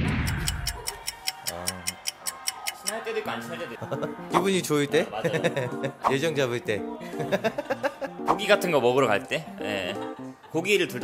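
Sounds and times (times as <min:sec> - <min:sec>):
clock ticking: 0:00.0 - 0:03.2
faint background music: 0:02.8 - 0:11.0.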